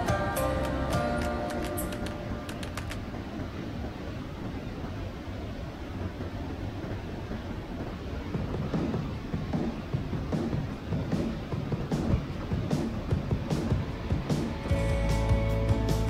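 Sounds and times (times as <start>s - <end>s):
music: 0.0s - 2.9s, 10.2s - 16.0s.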